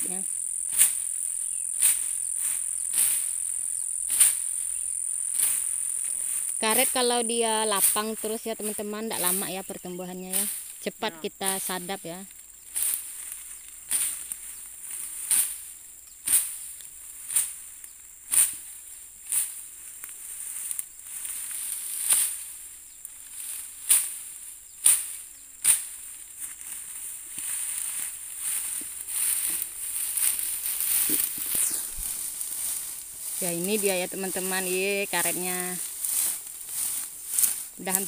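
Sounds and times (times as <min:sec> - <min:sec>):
snapping fern stems crunching: 0:00.0 - 0:10.8, 0:23.1 - 0:38.0
high-pitched insect chorus: 0:00.0 - 0:38.0
rustling fronds: 0:00.0 - 0:38.0.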